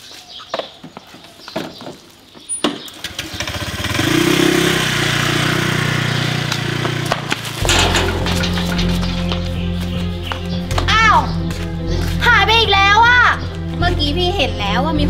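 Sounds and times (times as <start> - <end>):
motor scooter starting and pulling away: 2.8 - 7.6
background music with low notes: 7.6 - 15.0.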